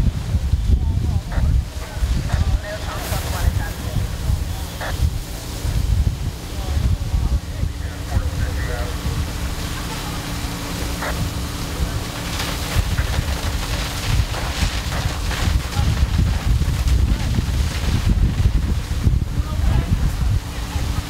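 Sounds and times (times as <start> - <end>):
fire engines pumping water: 0.0 - 21.0
low hum: 0.0 - 21.0
wind buffeting microphone: 0.0 - 21.0.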